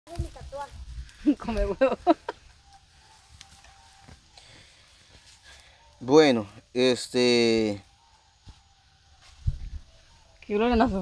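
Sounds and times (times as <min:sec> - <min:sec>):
faint steady tone: 0:01.0 - 0:11.0
man speaking: 0:06.0 - 0:07.8.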